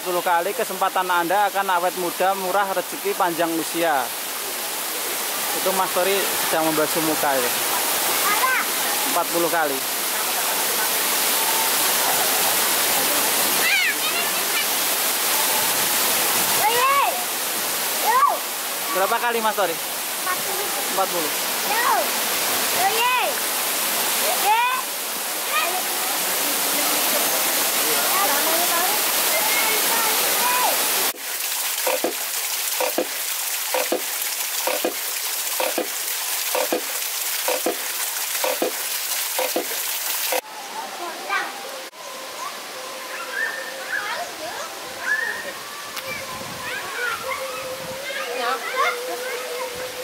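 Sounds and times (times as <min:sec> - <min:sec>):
running water: 0:00.0 - 0:50.0
waterfall rushing and splashing: 0:00.0 - 0:50.0
water wheel knocking: 0:31.8 - 0:32.2, 0:32.8 - 0:40.4.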